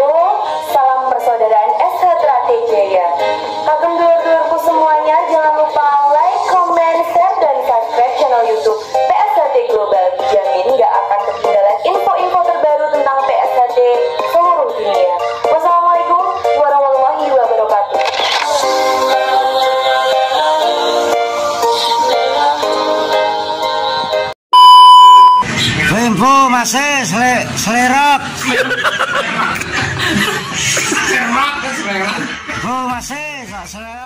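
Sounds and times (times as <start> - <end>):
woman speaking: 0.0 - 18.0
background music: 0.0 - 24.4.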